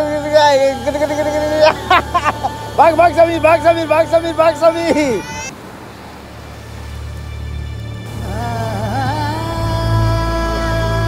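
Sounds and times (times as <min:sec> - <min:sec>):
child chanting: 0:00.0 - 0:05.2
wind: 0:00.0 - 0:11.0
surf on beach: 0:00.1 - 0:11.0.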